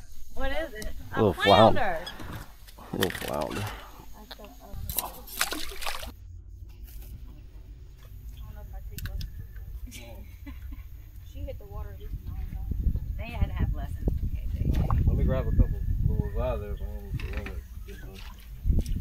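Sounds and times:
indistinct voices: 0.0 - 10.4
low steady rumble: 3.8 - 19.0
water lapping against boat hull: 4.7 - 6.2, 17.2 - 19.0.

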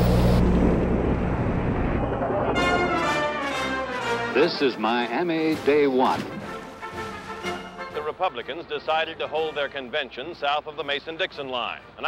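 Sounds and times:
low hum: 0.0 - 3.4.

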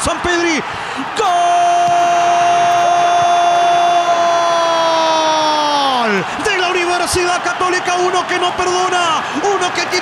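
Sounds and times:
commentator shouting goal: 0.0 - 10.0
stadium crowd noise: 0.0 - 10.0.

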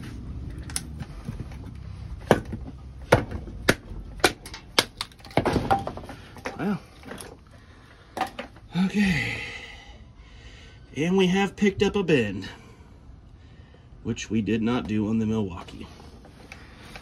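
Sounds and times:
wood pieces handled: 0.5 - 8.7.

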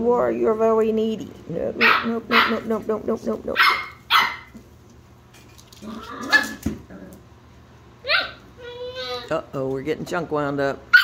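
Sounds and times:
puppy barking: 1.8 - 2.7, 3.6 - 4.6, 6.1 - 6.6, 8.0 - 9.3.

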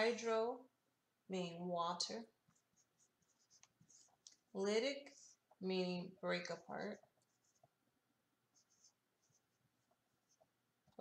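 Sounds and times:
marker writing on board: 2.5 - 4.2, 6.6 - 7.8, 8.6 - 10.6.

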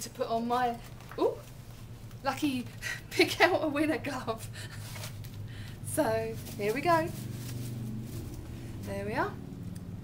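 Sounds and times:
woman's voice: 0.0 - 1.5, 2.2 - 4.8, 5.8 - 7.3, 8.8 - 9.4
low room hum: 0.0 - 10.0
paper slips rustling: 4.6 - 8.4.

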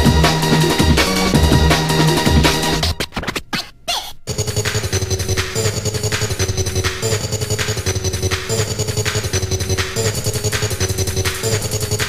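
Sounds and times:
heavy bass: 0.0 - 3.0
breakbeat drums: 0.0 - 12.0
choppy music stabs: 0.0 - 12.0
turntable scratching: 0.0 - 12.0.

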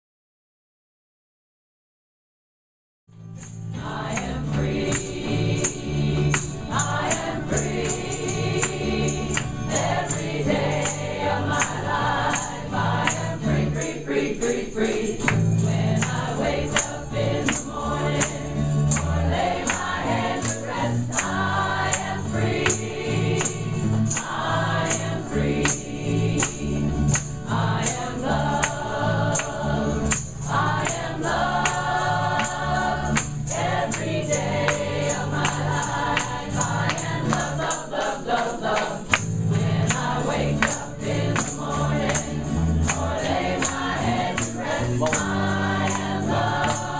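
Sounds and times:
tambourine struck on a beat: 3.1 - 46.9
gospel choir singing: 3.7 - 46.9
electric bass: 15.3 - 37.5.

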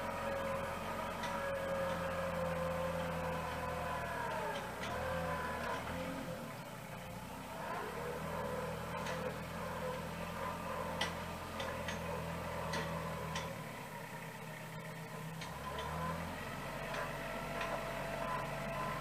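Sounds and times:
loader pushing dirt: 0.0 - 19.0
tractor diesel engine running: 0.0 - 19.0.

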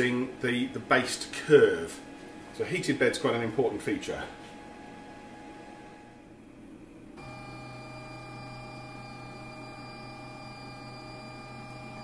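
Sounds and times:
printer machine whine: 7.2 - 12.0.

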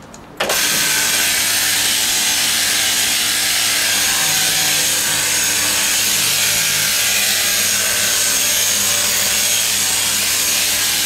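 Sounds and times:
sheep shearing handpiece buzzing: 0.5 - 11.0.

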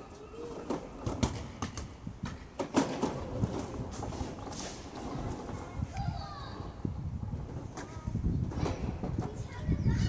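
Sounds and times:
wind rumble on microphone: 0.6 - 10.0.

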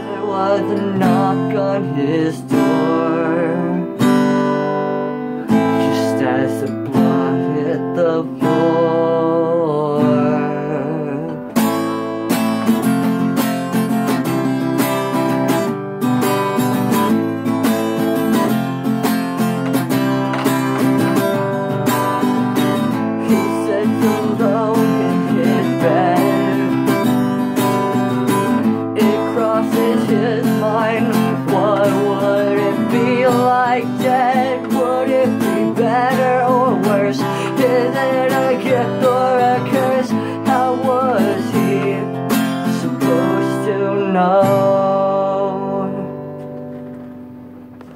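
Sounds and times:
acoustic guitar strumming: 0.0 - 47.9.

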